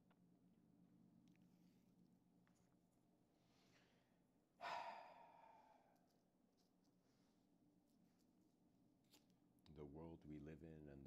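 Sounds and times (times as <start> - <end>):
person sighing: 4.6 - 5.9.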